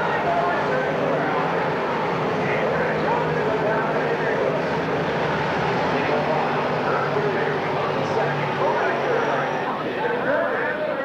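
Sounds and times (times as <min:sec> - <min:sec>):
race car engines: 0:00.0 - 0:11.0.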